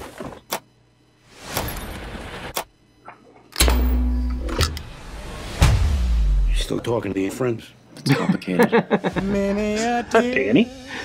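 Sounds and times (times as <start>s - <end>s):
trailer music with heavy bass: 3.7s - 6.6s.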